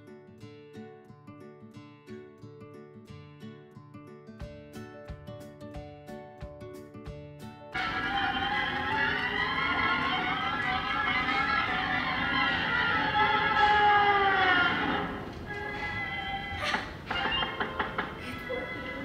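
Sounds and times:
cartoon soundtrack music: 7.8s - 14.9s.

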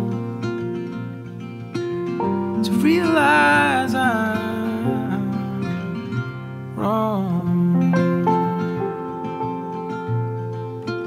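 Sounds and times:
person singing: 0.0s - 0.7s, 2.4s - 9.4s
acoustic guitar: 0.0s - 11.0s.

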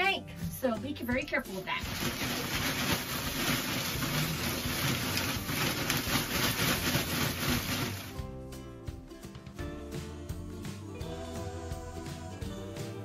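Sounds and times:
background music with sustained notes: 0.0s - 13.0s
wood shavings pouring onto floor: 1.8s - 8.2s.

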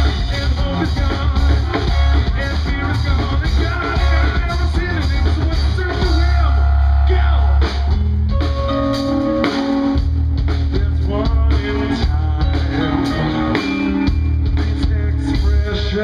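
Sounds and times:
drums: 0.0s - 16.0s
keyboard: 0.0s - 16.0s
person singing: 10.7s - 16.0s.

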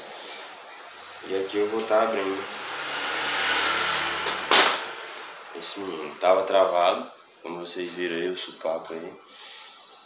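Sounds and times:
steady rushing noise: 0.9s - 6.4s
sharp crack of part breaking free: 4.3s - 4.9s.

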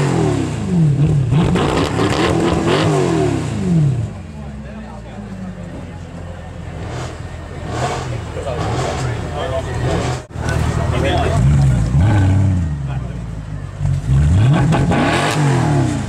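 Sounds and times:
car engine revving: 0.0s - 16.0s.

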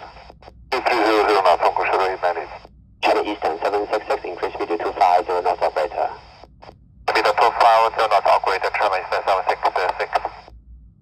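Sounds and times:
radio voice through speaker: 0.0s - 6.3s, 7.1s - 10.4s
faint low hiss: 0.0s - 10.5s.

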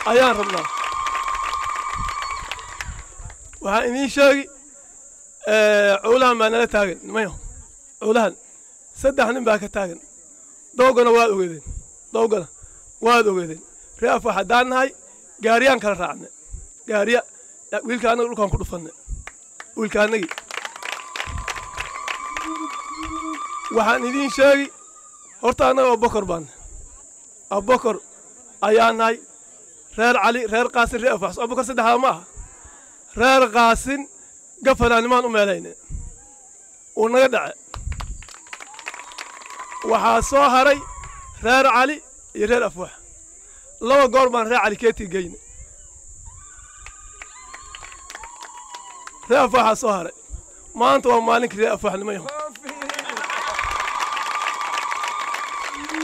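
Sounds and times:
high insect drone: 0.0s - 56.0s
whistle-like tone: 0.6s - 2.7s, 21.0s - 25.4s
man speaking into microphone: 49.3s - 53.0s.

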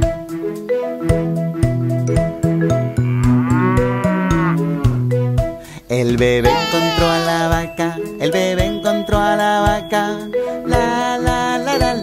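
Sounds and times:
instrumental children's music: 0.0s - 12.0s
cartoon cow mooing: 2.8s - 5.1s, 6.4s - 7.5s.

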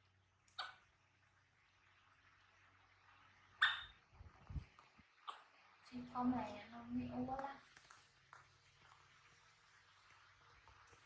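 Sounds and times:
baby monkey squeak: 3.6s - 3.9s.

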